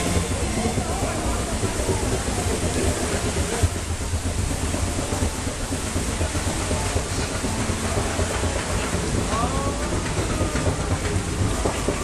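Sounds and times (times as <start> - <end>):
low machinery rumble: 0.0 - 12.0
water rushing: 0.0 - 12.0.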